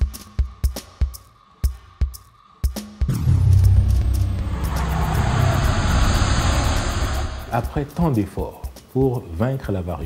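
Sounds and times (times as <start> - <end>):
deep whooshing rumble with hiss: 3.2 - 8.4.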